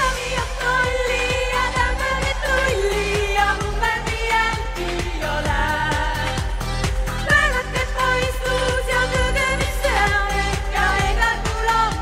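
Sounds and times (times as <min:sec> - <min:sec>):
women singing in harmony: 0:00.0 - 0:12.0.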